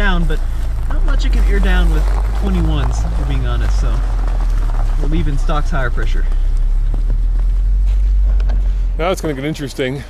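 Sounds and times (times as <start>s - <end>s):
car engine rumbling: 0.0s - 10.0s.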